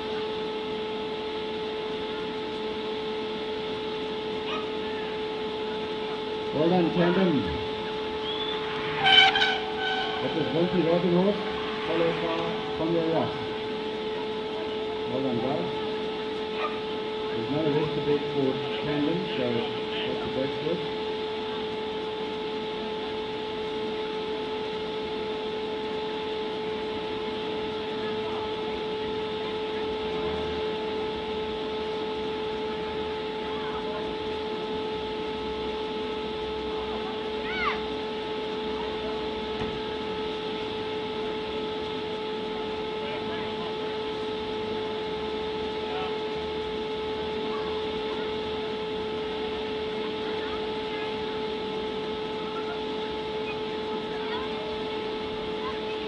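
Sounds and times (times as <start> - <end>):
steady hum: 0.0 - 56.0
short chirp: 8.2 - 10.2.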